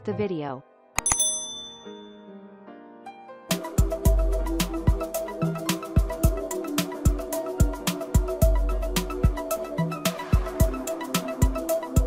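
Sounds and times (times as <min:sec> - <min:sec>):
soft background music: 0:00.0 - 0:12.0
bright bell ding: 0:01.0 - 0:02.4.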